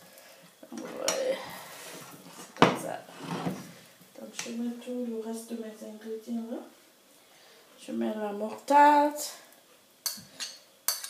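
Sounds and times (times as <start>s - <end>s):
metal spoon clinking on plate: 10.0s - 11.0s.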